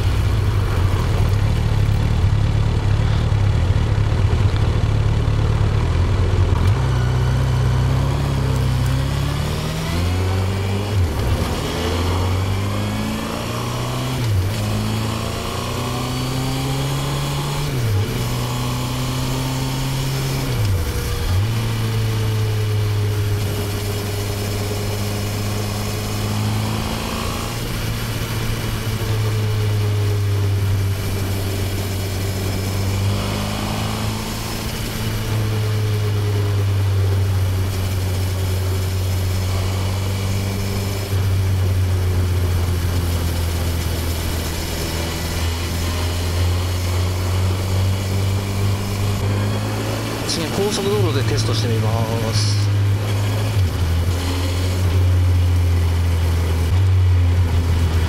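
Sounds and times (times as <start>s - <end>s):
motorcycle engine accelerating: 0.0s - 58.0s.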